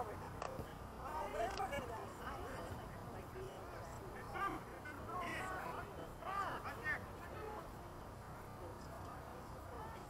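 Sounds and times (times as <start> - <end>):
background murmur: 0.0 - 10.0.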